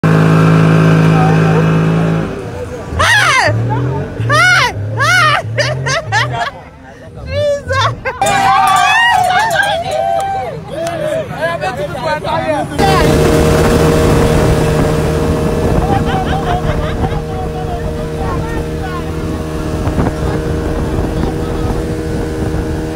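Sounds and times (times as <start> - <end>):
outboard motor running: 0.0 - 3.5, 12.8 - 22.9
speedboat engine drone: 0.0 - 7.6, 12.5 - 22.9
water rushing and spraying: 12.8 - 22.9.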